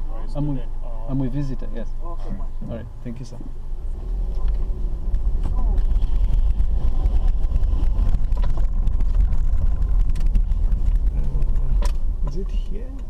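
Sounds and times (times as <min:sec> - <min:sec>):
engine and tyre rumble: 0:00.0 - 0:13.0
car clicks and rattles: 0:04.3 - 0:13.0.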